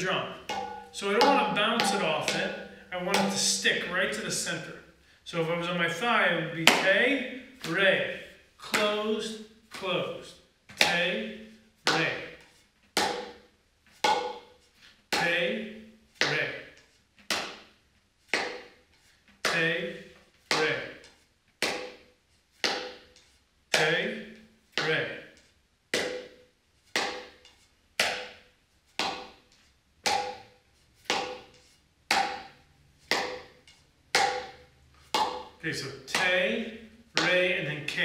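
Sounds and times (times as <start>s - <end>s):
muffled drum strokes: 0.0s - 4.5s.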